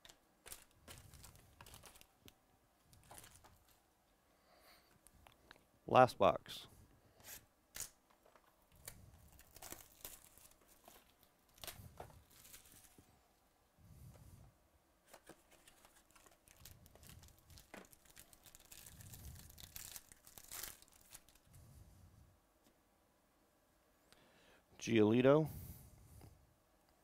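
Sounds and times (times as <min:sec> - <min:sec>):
plastic wrap crinkling and tearing: 0:00.0 - 0:03.8, 0:08.7 - 0:13.1, 0:15.1 - 0:21.5.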